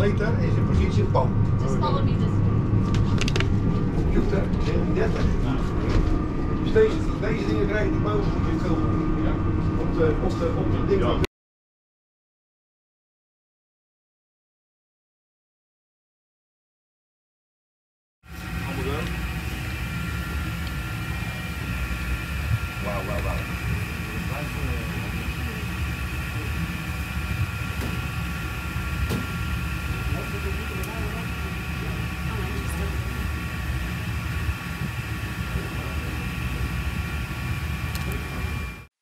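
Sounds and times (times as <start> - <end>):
steady low hum: 0.0 - 11.3, 18.3 - 38.9.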